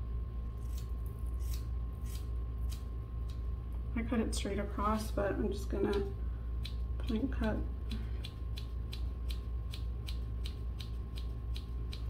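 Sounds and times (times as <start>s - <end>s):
steady low hum: 0.0s - 12.0s
scissors snipping hair: 0.6s - 3.4s, 5.7s - 12.0s.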